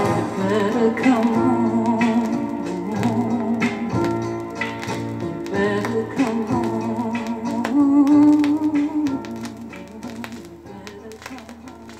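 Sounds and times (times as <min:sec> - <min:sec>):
pop song: 0:00.0 - 0:11.9.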